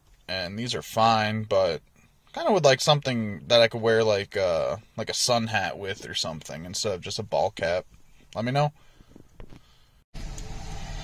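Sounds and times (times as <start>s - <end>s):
vehicle engine and cabin rumble: 10.2s - 11.0s.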